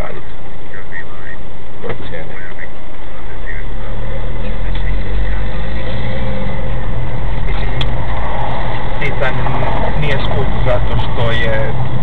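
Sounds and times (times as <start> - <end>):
road noise: 0.0 - 12.0
car engine accelerating: 3.0 - 12.0.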